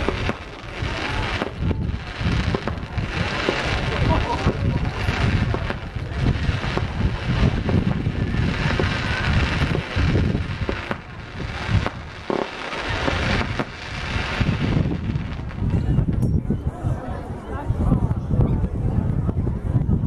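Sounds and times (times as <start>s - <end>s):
fireworks bangs and crackles: 0.0s - 16.2s
wind on microphone: 0.0s - 20.0s.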